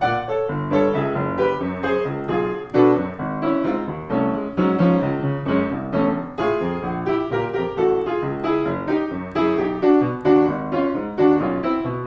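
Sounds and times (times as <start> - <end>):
piano chords ringing: 0.0 - 12.0.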